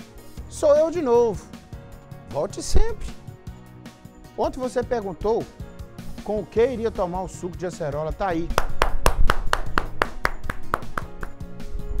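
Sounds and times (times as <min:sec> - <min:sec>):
man clapping hands: 0:08.4 - 0:11.5.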